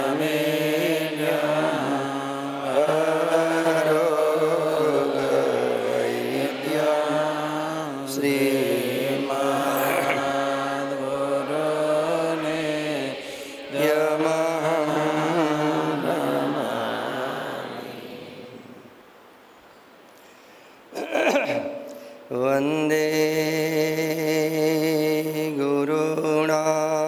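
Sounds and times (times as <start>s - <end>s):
short breaths: 20.2s - 20.9s
man chanting: 22.3s - 27.0s.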